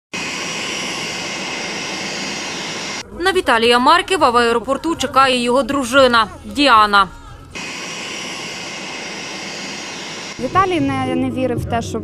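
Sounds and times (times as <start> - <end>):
jet engines running: 0.1 - 3.1, 7.6 - 11.4
high whine: 0.1 - 3.2, 7.5 - 11.4.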